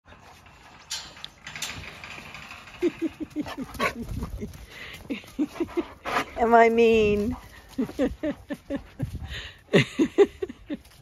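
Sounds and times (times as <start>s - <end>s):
metal gate clanking: 0.1s - 4.0s.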